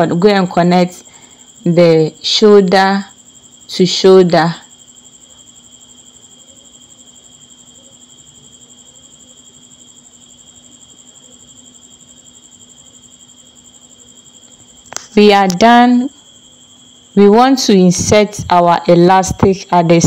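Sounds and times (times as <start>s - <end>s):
cricket trilling: 0.0s - 20.0s.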